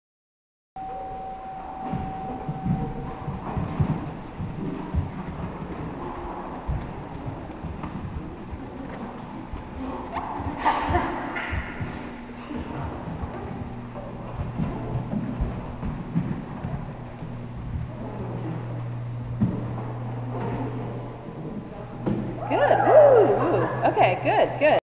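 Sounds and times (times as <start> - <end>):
steady low hum: 0.8 - 24.8.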